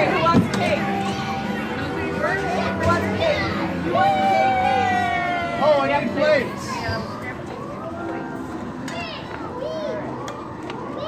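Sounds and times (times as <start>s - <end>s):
background music: 0.0s - 9.8s
children talking and exclaiming: 0.0s - 11.0s.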